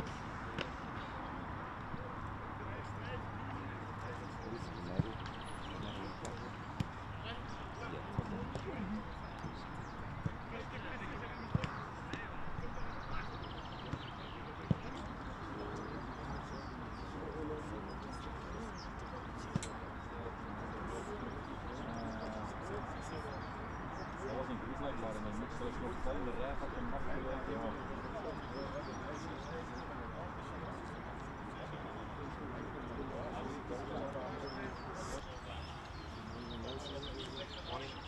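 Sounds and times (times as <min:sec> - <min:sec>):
distant voices: 0:00.0 - 0:38.0.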